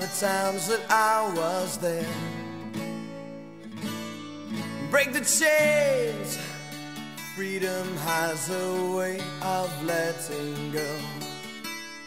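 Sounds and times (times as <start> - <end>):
singer's voice: 0.0 - 3.5, 4.6 - 12.0
guitar chords strummed: 0.0 - 12.0.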